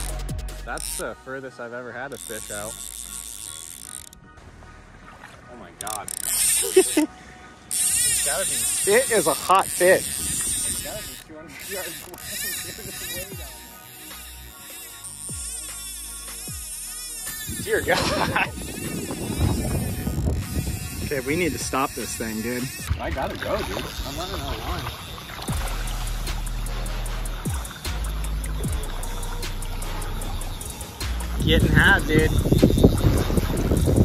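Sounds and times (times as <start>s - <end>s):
fly reel buzzing: 0.0s - 1.2s, 2.0s - 4.3s, 5.8s - 7.1s, 7.7s - 34.0s
wind buffeting microphone: 9.0s - 13.5s, 17.4s - 26.0s, 27.3s - 34.0s.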